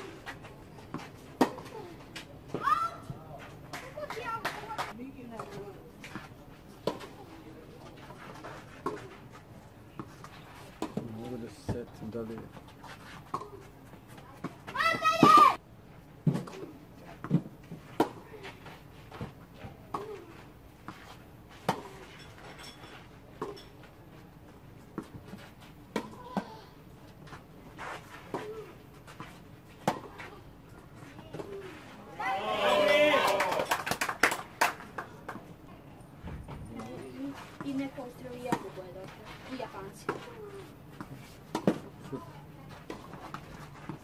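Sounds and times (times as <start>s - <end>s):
young voice shouting: 2.6s - 3.0s, 14.7s - 15.6s, 32.2s - 33.6s.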